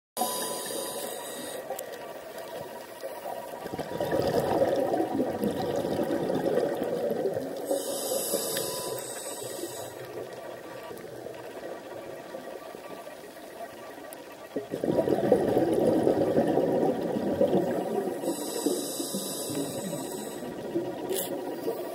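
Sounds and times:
muffled underwater water noise: 0.2 - 21.9.

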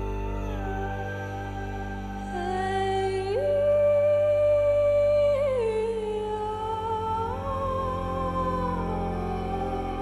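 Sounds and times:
low sustained accompaniment: 0.0 - 10.0.

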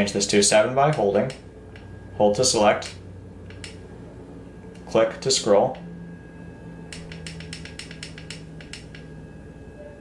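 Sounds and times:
push button clicking rapidly: 7.0 - 9.0.

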